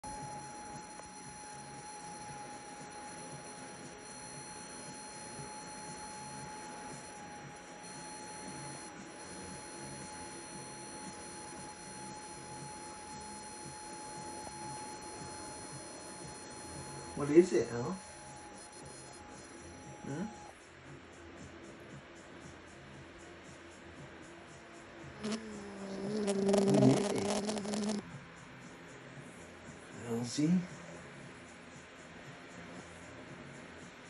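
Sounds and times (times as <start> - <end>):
thin high tone: 0.0 - 20.5, 25.2 - 28.0.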